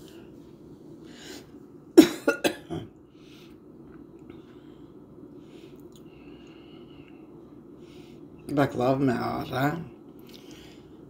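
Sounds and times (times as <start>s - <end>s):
person coughing: 2.0s - 3.0s.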